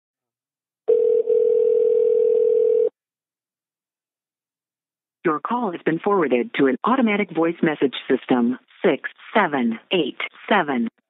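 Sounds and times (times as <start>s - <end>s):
telephone ringback tone: 0.9s - 2.9s.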